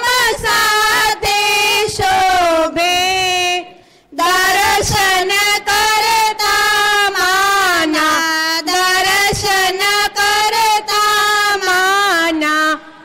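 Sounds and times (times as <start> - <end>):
woman singing into a microphone: 0.0 - 13.0.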